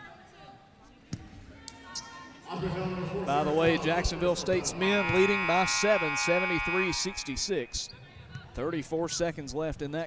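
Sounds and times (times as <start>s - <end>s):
person speaking: 2.5s - 7.7s.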